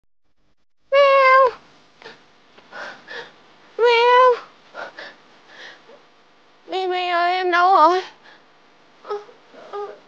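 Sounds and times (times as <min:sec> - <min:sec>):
woman making meow-like call: 0:00.9 - 0:01.6.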